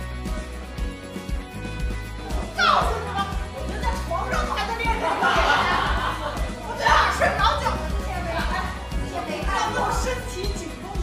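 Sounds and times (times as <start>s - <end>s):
background music with low bass: 0.0s - 11.0s
woman speaking: 6.7s - 11.0s.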